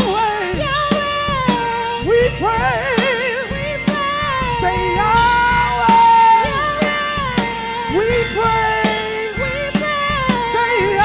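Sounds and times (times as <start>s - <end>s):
live band playing: 0.0s - 11.0s
woman singing gospel: 0.0s - 11.0s.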